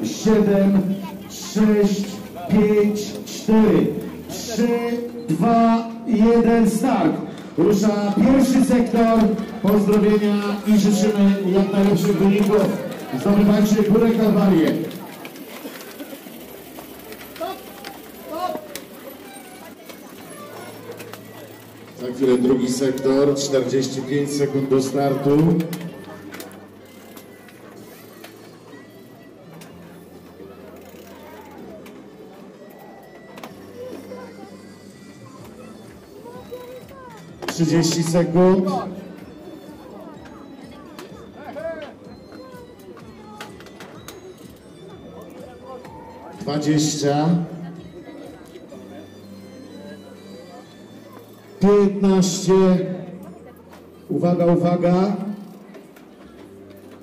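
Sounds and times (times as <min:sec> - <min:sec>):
background music: 0:00.0 - 0:57.0
low background noise: 0:00.0 - 0:57.0
murmur of people talking: 0:00.0 - 0:57.0.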